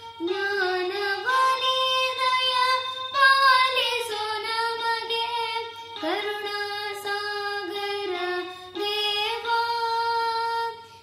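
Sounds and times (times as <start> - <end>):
boy singing devotional song: 0.0 - 11.0.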